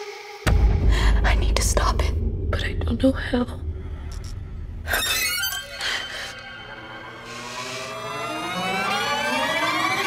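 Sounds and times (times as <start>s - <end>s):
rising tonal riser: 3.7s - 10.0s.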